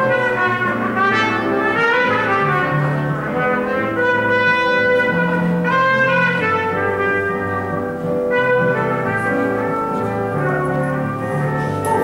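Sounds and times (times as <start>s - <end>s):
piano accompaniment: 0.0s - 12.0s
trumpet playing jazz melody: 0.0s - 12.0s.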